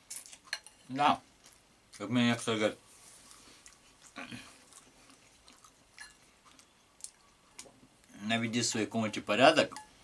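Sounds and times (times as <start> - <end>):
person chewing food: 0.0 - 2.0, 3.1 - 8.2.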